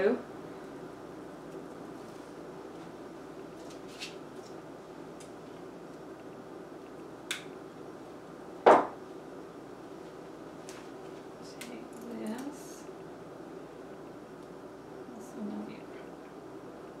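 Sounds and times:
low room hum: 0.0s - 17.0s
sharp knock on tabletop: 8.7s - 9.0s.

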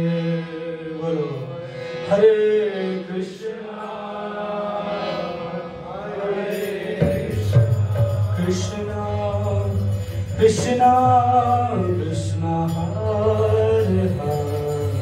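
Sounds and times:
voices chanting a mantra: 0.0s - 15.0s.

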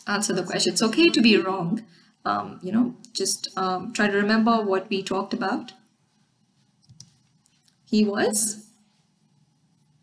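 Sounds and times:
woman speaking: 0.0s - 5.8s, 7.9s - 8.8s.

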